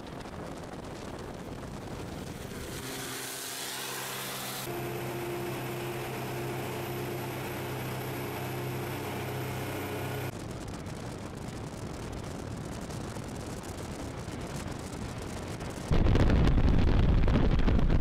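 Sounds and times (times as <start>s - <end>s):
rushing wind and road noise: 0.0s - 18.0s
armoured car engine drone: 0.9s - 10.7s.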